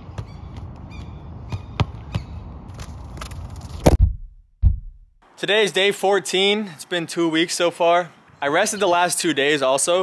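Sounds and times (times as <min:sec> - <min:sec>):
ball thudding on bare feet: 0:00.0 - 0:05.0.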